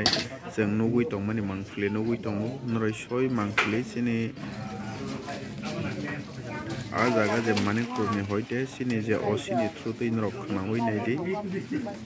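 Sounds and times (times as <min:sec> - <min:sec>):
man's voice: 0:00.0 - 0:05.0, 0:06.9 - 0:12.0
crowd murmur: 0:00.0 - 0:12.0.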